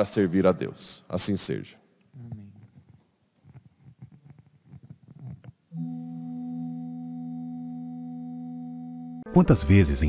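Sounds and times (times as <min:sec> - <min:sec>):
held musical chord: 0:05.8 - 0:10.0.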